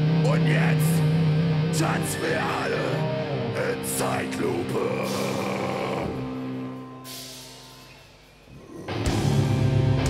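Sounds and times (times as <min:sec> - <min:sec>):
metalcore band playing live: 0:00.0 - 0:10.0.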